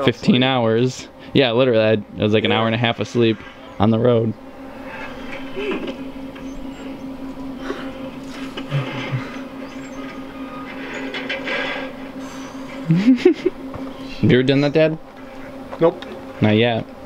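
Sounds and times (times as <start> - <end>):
equipment humming: 0.0 - 17.0.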